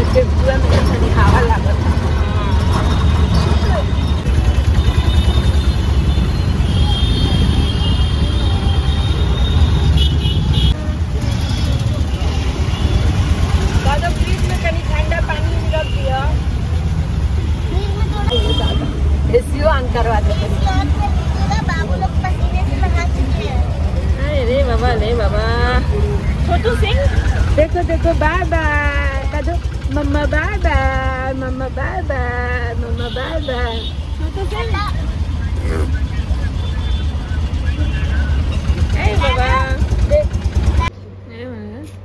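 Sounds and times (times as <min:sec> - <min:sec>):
auto-rickshaw engine rumbling: 0:00.0 - 0:42.0
traffic: 0:00.0 - 0:42.0.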